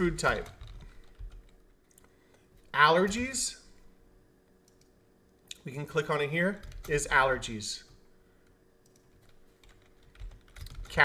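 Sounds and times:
computer keyboard typing: 0.0s - 2.4s, 6.6s - 7.1s, 8.8s - 11.0s
faint steady hum: 0.0s - 11.0s.

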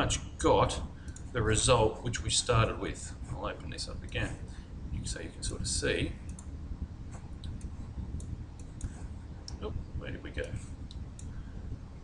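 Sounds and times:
low steady background hum: 0.0s - 12.0s
computer mouse clicks: 6.3s - 6.5s, 7.1s - 9.6s.

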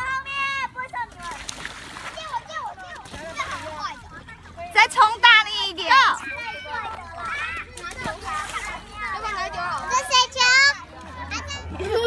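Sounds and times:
children shouting at play: 0.0s - 12.0s.

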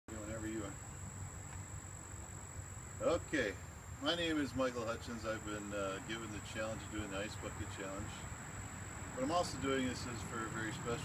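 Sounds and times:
crickets trilling: 0.1s - 11.0s.

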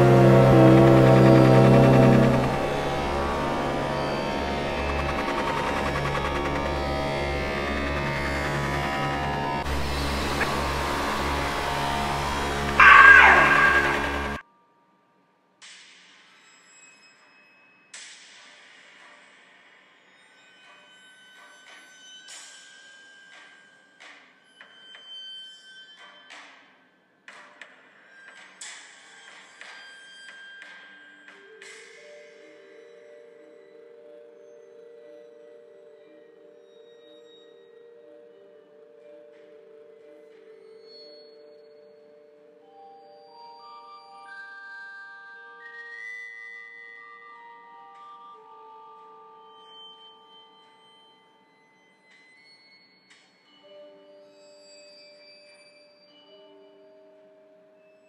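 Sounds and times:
sustained low chord: 0.0s - 14.4s
sweeping sound effect: 0.0s - 14.4s.

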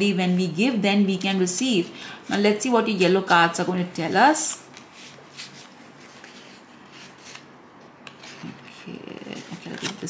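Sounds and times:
paper cards shuffling: 4.4s - 10.0s.

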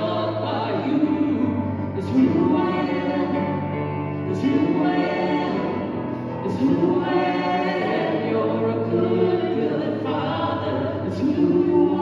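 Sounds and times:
man and woman singing: 0.0s - 12.0s.

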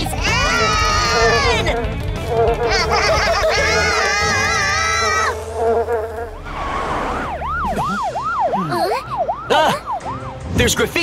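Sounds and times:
cartoon bugs buzzing: 0.2s - 8.0s
police siren wailing: 6.4s - 10.6s.

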